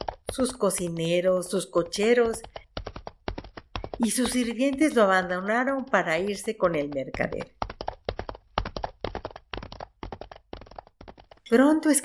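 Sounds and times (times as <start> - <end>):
quick sharp taps: 0.0 - 11.5.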